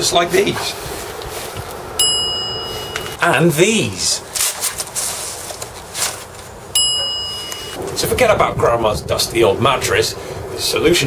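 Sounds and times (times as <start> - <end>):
high bell ding: 2.0 - 3.2, 6.8 - 7.8.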